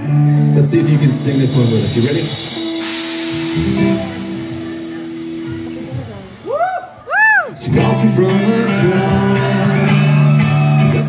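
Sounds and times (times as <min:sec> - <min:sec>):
crowd noise: 0:00.0 - 0:11.0
rock band through pa: 0:00.0 - 0:11.0.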